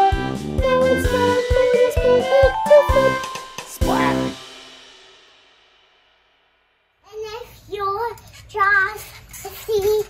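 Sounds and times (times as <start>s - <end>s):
young child singing: 0.0s - 4.1s
ringing music tail: 1.2s - 6.9s.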